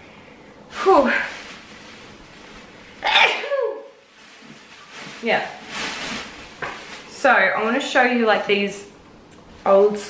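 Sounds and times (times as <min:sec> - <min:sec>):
woman sneezing: 0:03.0 - 0:03.9.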